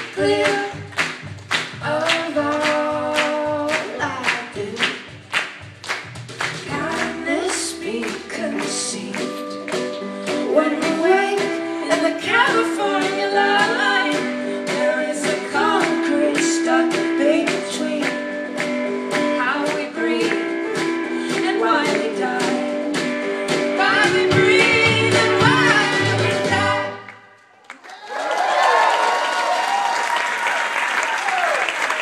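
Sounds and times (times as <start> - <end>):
woman singing: 0.0 - 1.0, 1.8 - 5.0, 6.6 - 27.1
acoustic guitar: 0.0 - 27.2
drums: 0.0 - 27.4
electric bass: 15.5 - 27.0.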